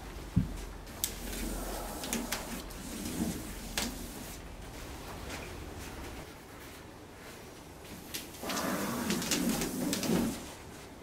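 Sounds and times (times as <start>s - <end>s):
person's low voiced exhale: 1.4s - 2.8s.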